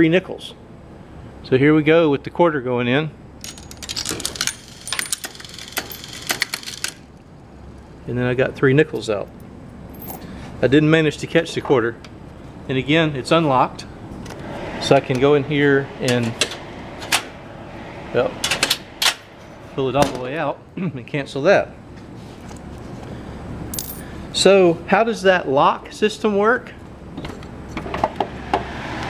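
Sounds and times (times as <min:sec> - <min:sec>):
fan running: 0:00.0 - 0:29.0
coin changer clicking: 0:03.4 - 0:07.0
coins clinking: 0:03.4 - 0:07.0, 0:09.9 - 0:10.3, 0:23.7 - 0:24.1.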